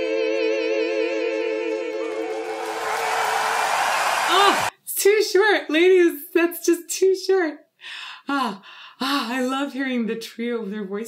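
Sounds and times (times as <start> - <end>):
crowd applause and cheering: 1.9 - 4.7.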